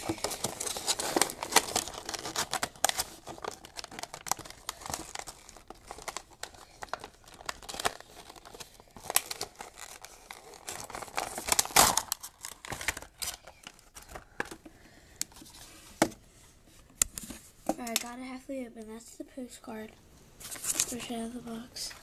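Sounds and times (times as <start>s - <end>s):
packaging crinkling and tearing: 0.0s - 14.6s.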